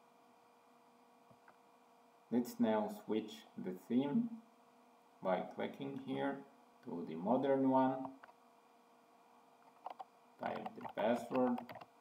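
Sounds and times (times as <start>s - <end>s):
faint steady hum: 0.0s - 12.0s
mouse click: 9.8s - 11.9s.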